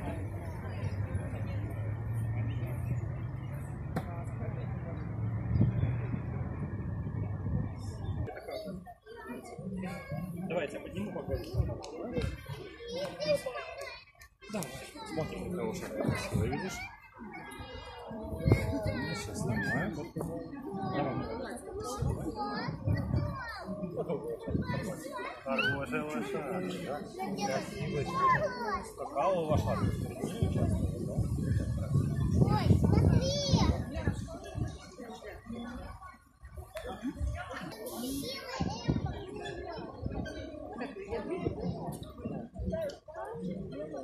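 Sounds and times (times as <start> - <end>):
low rumbling on microphone: 0.0 - 9.0, 17.6 - 25.0, 29.6 - 37.7
children talking: 0.0 - 44.0.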